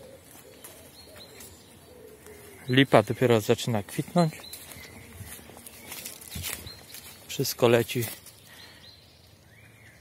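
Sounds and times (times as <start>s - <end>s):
dove cooing: 0.0s - 3.0s.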